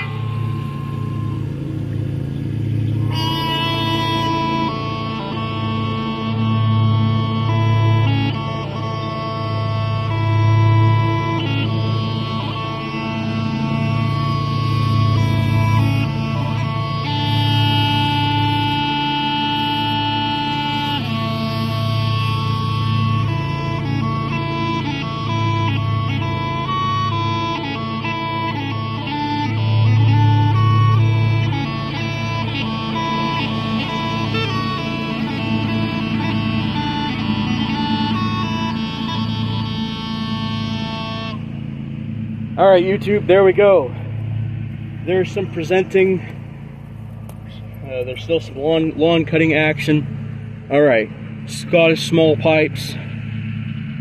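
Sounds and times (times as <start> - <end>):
smallpipes playing a tune: 0.0 - 54.0.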